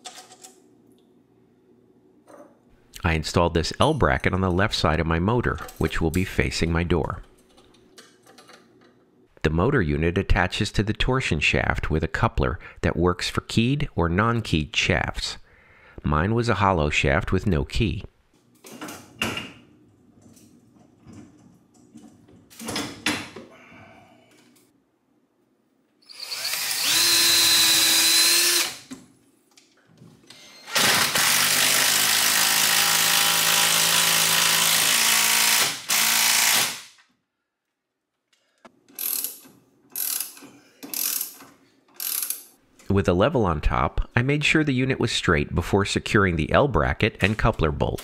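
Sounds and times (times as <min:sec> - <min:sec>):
cordless drill running: 0:26.1 - 0:28.9, 0:30.7 - 0:36.8.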